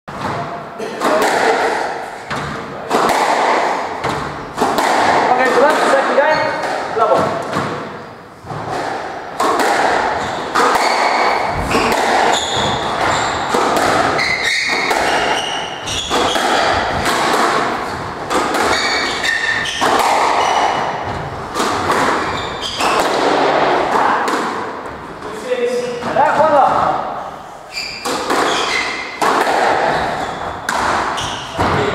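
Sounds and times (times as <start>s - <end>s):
squash ball striking rackets and walls: 0.1s - 31.9s
shoes squeaking on wooden floor: 5.3s - 8.8s, 10.1s - 23.3s, 27.7s - 29.2s, 29.9s - 31.9s.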